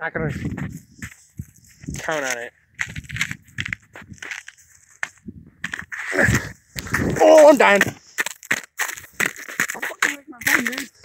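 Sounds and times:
footsteps crunching on snow: 0.3s - 11.0s.

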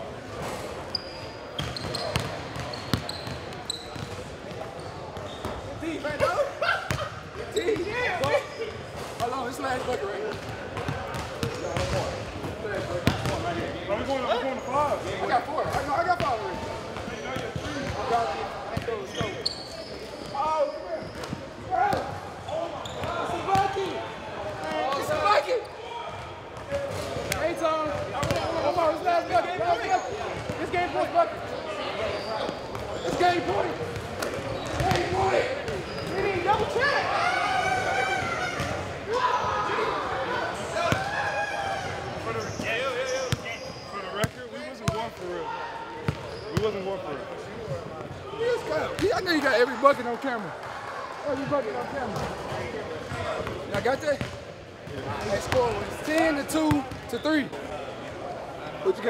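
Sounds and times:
players' voices and shouts: 0.0s - 59.0s.

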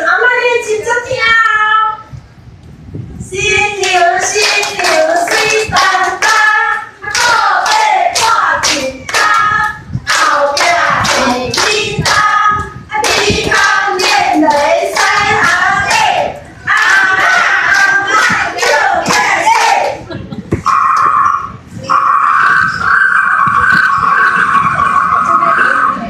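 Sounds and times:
group singing: 3.5s - 20.0s
hand-clapping beat: 3.8s - 16.1s, 16.7s - 20.0s.

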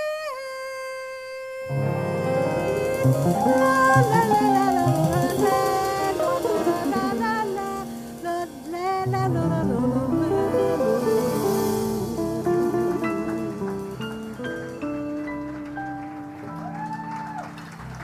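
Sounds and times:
woman singing with vibrato: 0.0s - 16.4s
piano: 0.0s - 18.0s
drums: 1.7s - 18.0s
jazz guitar: 1.7s - 18.0s.

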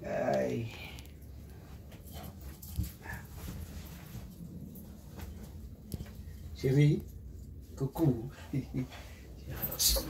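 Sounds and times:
clothing rustling: 1.2s - 7.4s.

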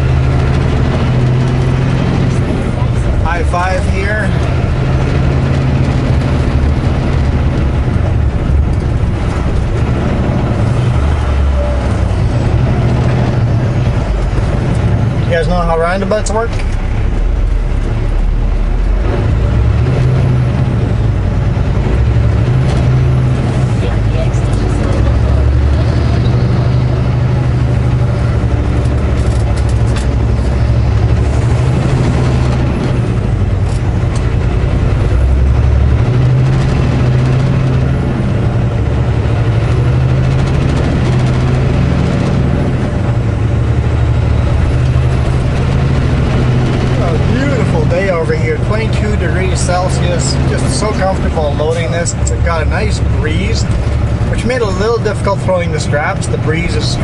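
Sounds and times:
truck diesel engine rumble: 0.0s - 57.0s.

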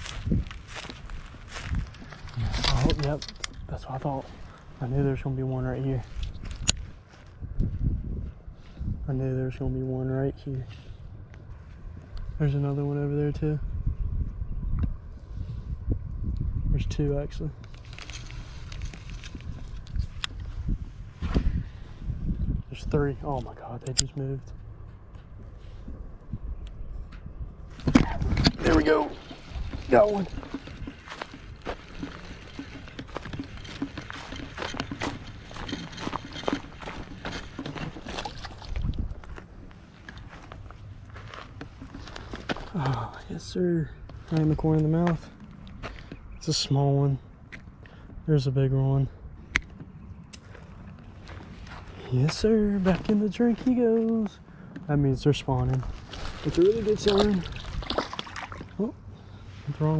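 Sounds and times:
footsteps on dirt: 0.0s - 8.9s, 27.7s - 43.3s, 44.0s - 46.3s, 49.8s - 54.9s, 55.5s - 58.7s
wind buffeting microphone: 0.0s - 59.9s.

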